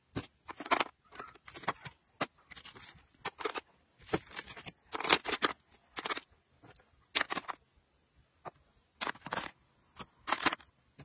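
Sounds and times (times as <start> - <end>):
plastic pencils clattering in bin: 0.1 - 7.6, 9.0 - 10.7.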